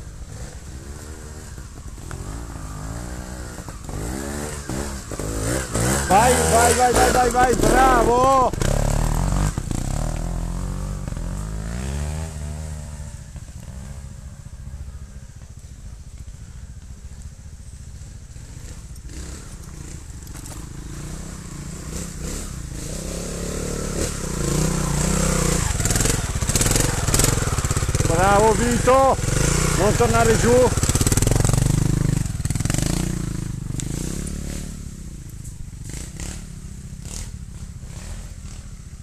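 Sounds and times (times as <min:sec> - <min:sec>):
motorcycle engines revving: 0:00.0 - 0:39.0.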